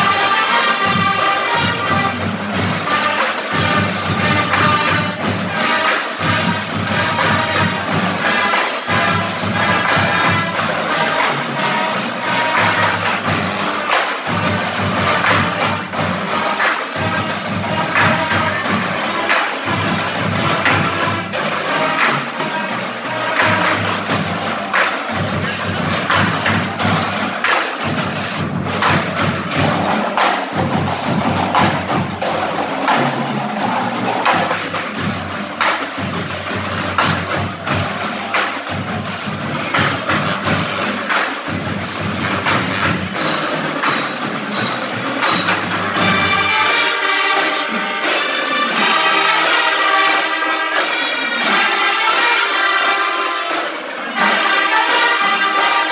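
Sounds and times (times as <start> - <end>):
marching band playing: 0.0 - 55.9
sharp clicking drum strokes: 0.0 - 55.9.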